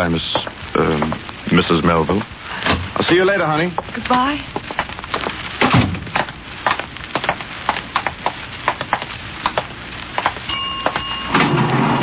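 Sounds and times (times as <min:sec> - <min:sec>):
footsteps on hard floor: 0:03.7 - 0:11.1
elevator bell ringing: 0:10.5 - 0:12.0.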